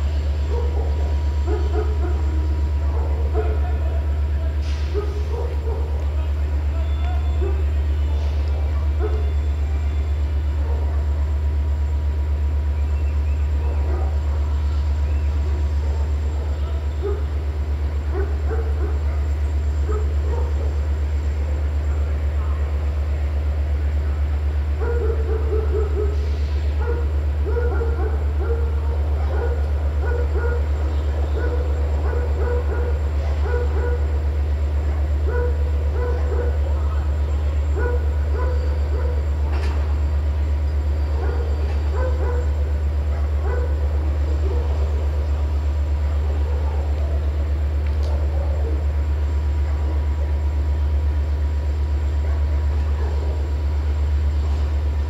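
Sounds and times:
diesel locomotive engine idling: 0.0 - 55.0
dog barking: 0.4 - 3.8, 4.8 - 6.1, 7.4 - 7.7, 8.9 - 9.4, 10.6 - 11.2, 13.6 - 14.5, 15.5 - 17.4, 18.1 - 20.8, 24.8 - 34.2, 35.0 - 37.1, 37.7 - 39.3, 41.1 - 45.1, 46.2 - 47.3, 48.0 - 48.9, 52.3 - 53.5.

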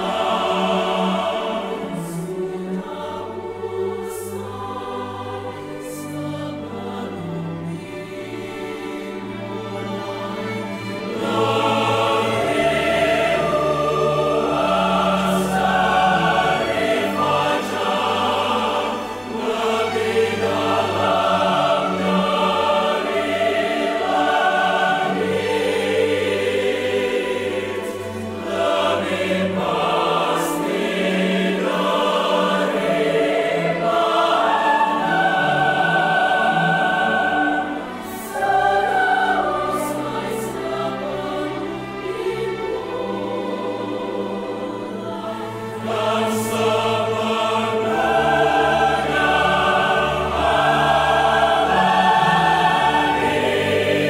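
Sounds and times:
mixed choir singing: 0.0 - 54.0
orchestral strings: 0.0 - 54.0.

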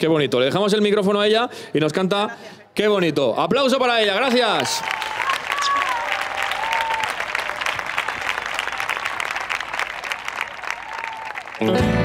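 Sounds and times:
crowd applauding: 4.2 - 12.0.

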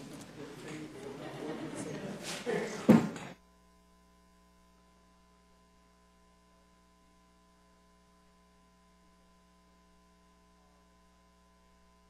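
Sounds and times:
room sound: 0.0 - 3.4
faint electrical mains hum: 0.0 - 12.0.

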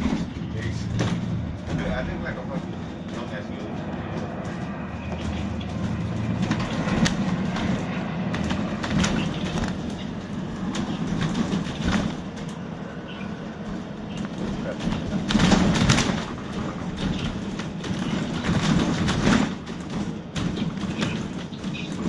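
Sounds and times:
bus engine and road rumble: 0.0 - 22.0
rattles and knocks from bus body: 0.0 - 22.0.

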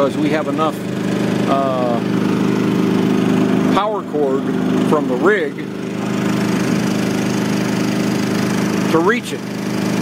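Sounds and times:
generator engine humming: 0.0 - 10.0.

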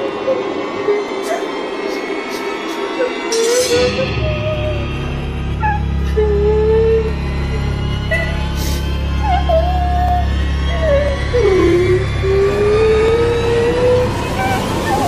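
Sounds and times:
low drone: 0.0 - 15.0
slow wavering gliding melody: 0.0 - 15.0.

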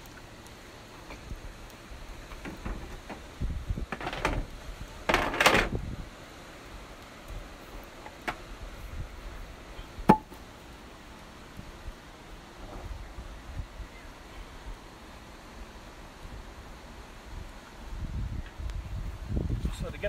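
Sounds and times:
low wind rumble: 0.0 - 20.0.

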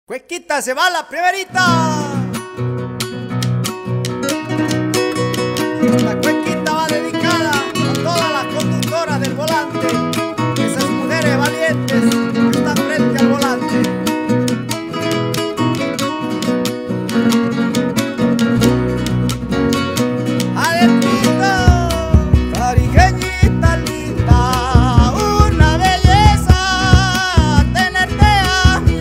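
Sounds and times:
plucked acoustic guitar music: 1.5 - 29.0
deep low notes: 21.6 - 29.0.

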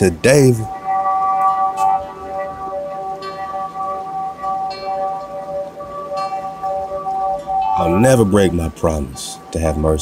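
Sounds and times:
ambient music with bell-like tones: 0.0 - 10.0
chime struck: 0.0 - 10.0.

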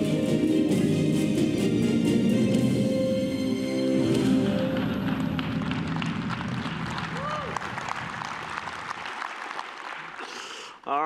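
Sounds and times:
audience clapping: 4.1 - 10.9.

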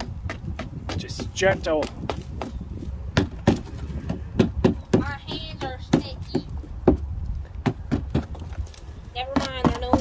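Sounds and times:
hammer knocking on plastic: 0.0 - 8.5, 9.3 - 10.0.

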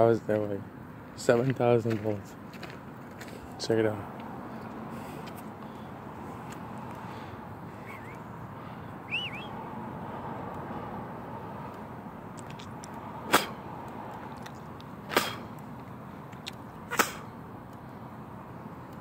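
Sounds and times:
electric fence snapping: 15.1 - 15.4, 16.4 - 17.3.

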